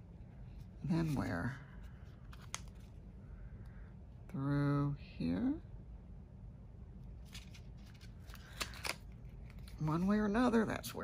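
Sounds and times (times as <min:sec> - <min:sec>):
faint low hum: 0:00.0 - 0:11.0
paper pages rustling: 0:00.5 - 0:03.1, 0:07.2 - 0:10.1.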